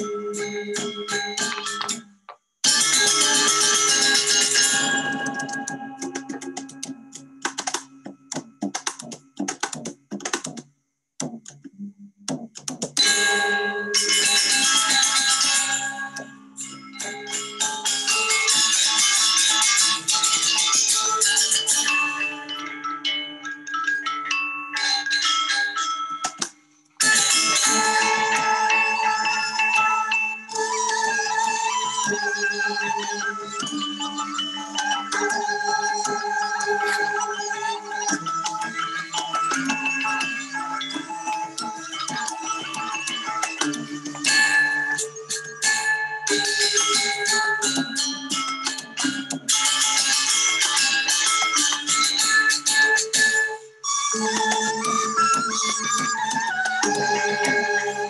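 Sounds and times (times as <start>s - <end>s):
gamelan music: 0.0s - 7.8s, 13.0s - 58.0s.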